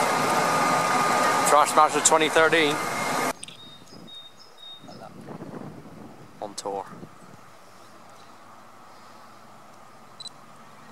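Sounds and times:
bird high whistle: 3.4 - 5.0.

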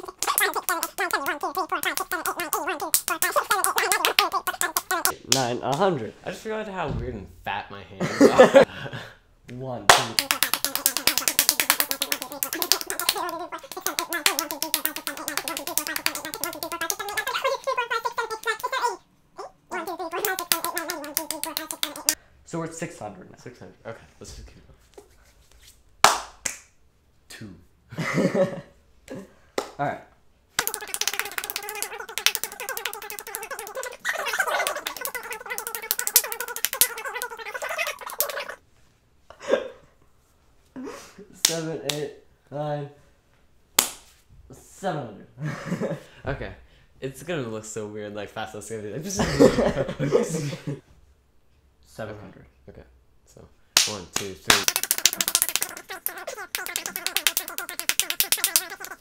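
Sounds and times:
palms slapping together: 0.0 - 5.9, 9.9 - 19.0, 19.8 - 22.2, 26.0 - 26.7, 30.6 - 38.6, 43.8 - 44.1, 53.8 - 59.0
faint voice: 54.7 - 59.0.

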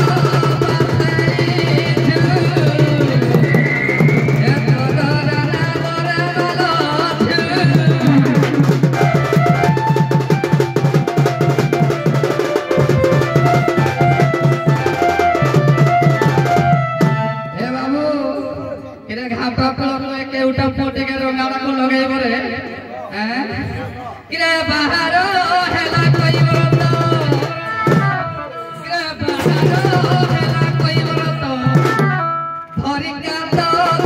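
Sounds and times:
fast hand drumming: 0.0 - 17.3, 25.7 - 28.2, 29.1 - 32.2.

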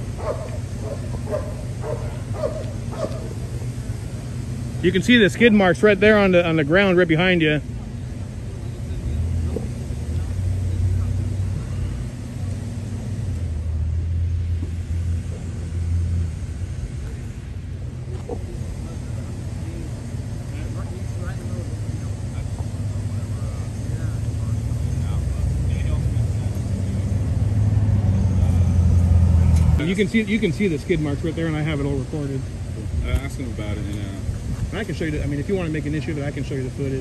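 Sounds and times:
faint voices: 0.0 - 13.8, 16.8 - 27.4
vehicle engine rumbling: 0.0 - 37.0.

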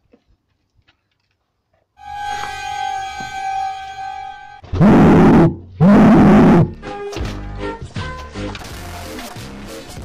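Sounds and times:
distorted yells: 2.0 - 6.8.

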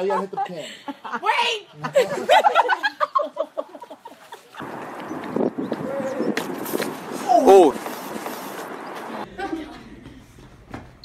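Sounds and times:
person laughing: 9.2 - 10.2.

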